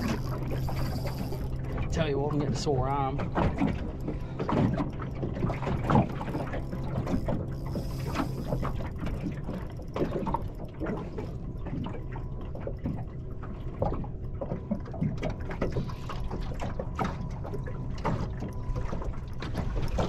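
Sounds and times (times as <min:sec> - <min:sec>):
fishing reel clicking: 0:00.0 - 0:02.1, 0:05.8 - 0:10.6
water lapping against boat hull: 0:00.0 - 0:20.0.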